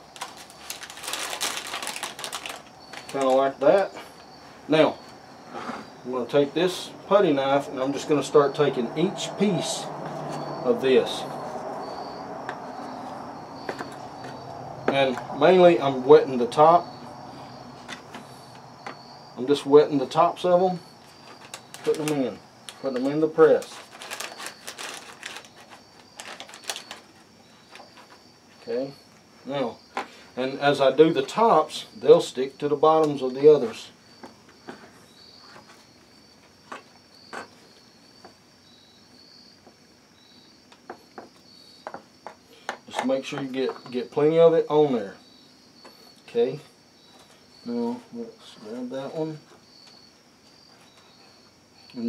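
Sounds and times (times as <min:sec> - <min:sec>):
crickets chirping: 0:00.0 - 0:52.0
faint high whine: 0:01.1 - 0:23.6.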